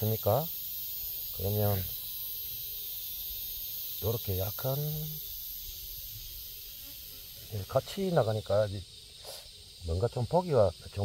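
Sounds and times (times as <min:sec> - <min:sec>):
insects chirring: 0:00.0 - 0:11.0.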